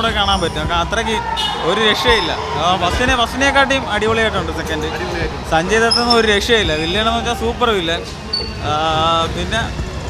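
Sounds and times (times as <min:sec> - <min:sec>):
man talking into microphone: 0:00.0 - 0:09.8.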